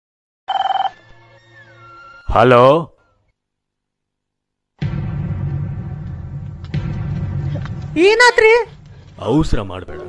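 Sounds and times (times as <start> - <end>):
telephone ringing: 0.5 - 1.0.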